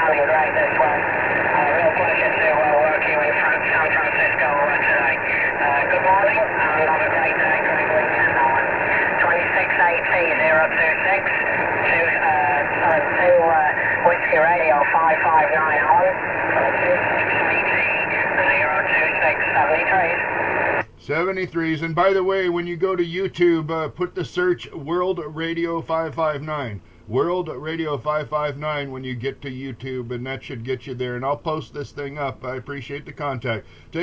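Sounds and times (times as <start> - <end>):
voice over radio speaker: 0.0 - 23.3
radio static hiss: 0.0 - 34.0.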